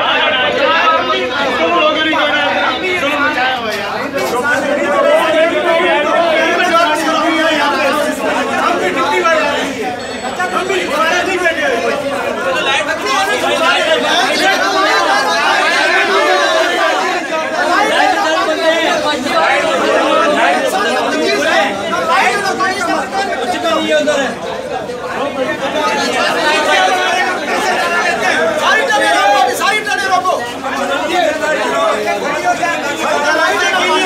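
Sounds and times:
angry crowd of men shouting: 0.0 - 24.4, 25.3 - 34.0.

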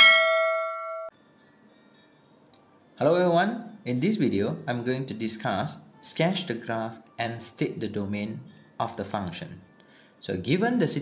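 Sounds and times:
bright notification bell ding: 0.0 - 1.1.

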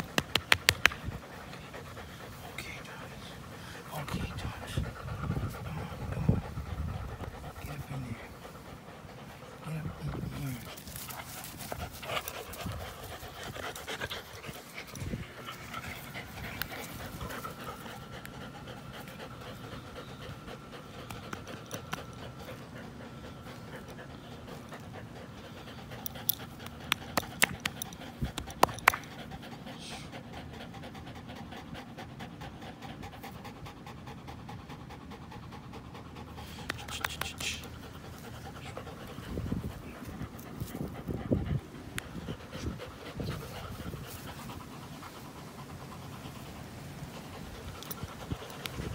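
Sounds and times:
sharp clicks: 0.0 - 1.0
dogs panting: 0.0 - 48.9.

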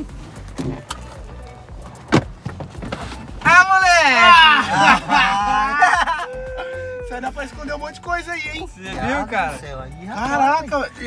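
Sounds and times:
background music: 0.0 - 11.0
men exclaiming excitedly: 3.4 - 11.0.

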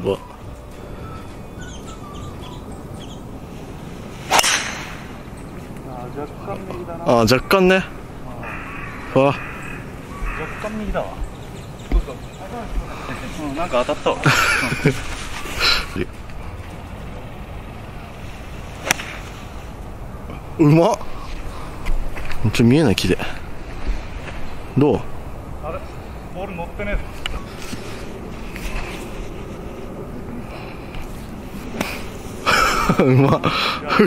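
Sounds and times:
golf club striking ball: 4.3 - 5.4, 18.8 - 19.2.

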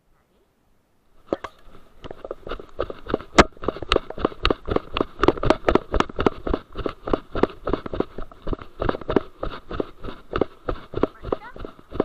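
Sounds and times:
camera jostling: 1.2 - 12.0
footsteps on grass: 1.2 - 12.0.

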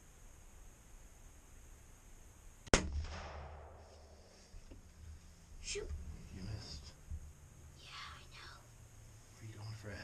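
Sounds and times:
rifle shot with echo: 2.7 - 4.3.

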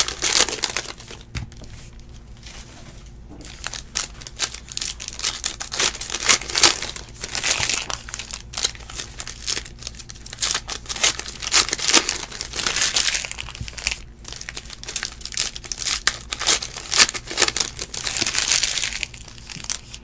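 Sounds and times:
plastic wrappers crinkling and tearing: 0.0 - 2.6, 3.4 - 20.0.

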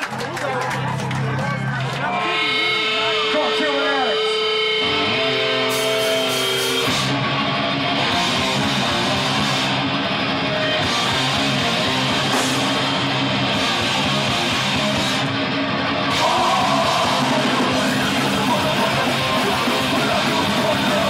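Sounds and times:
heavy rock band playing: 1.4 - 21.0
electric guitar squeals: 2.0 - 9.8
guitar feedback note: 2.0 - 20.7
cymbal crashes: 12.3 - 13.0.

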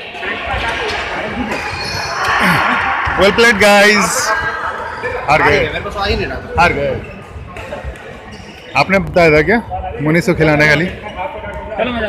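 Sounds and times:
man talking: 3.2 - 4.3, 5.3 - 7.0.

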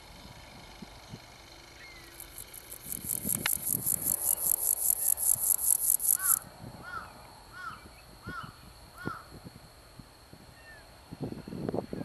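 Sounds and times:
insect pulsing buzz: 0.0 - 11.2
thin high insect tone: 0.1 - 11.7
bird calling: 1.7 - 9.3.

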